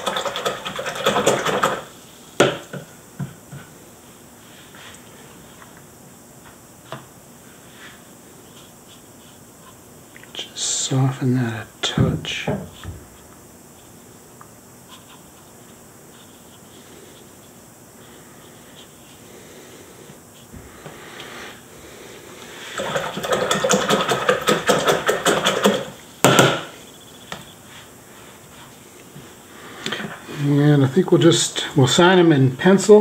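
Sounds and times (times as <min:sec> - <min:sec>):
sharp knock: 0:26.2 - 0:26.7.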